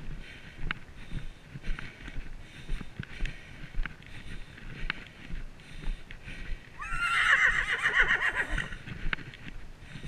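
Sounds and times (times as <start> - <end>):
hoofbeats on dirt: 0.0 - 10.0
horse whinnying: 6.8 - 8.8.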